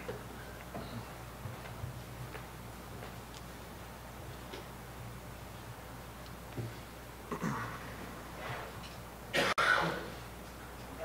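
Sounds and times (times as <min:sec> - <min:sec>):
man clearing his throat: 0:07.3 - 0:07.8, 0:09.3 - 0:10.2.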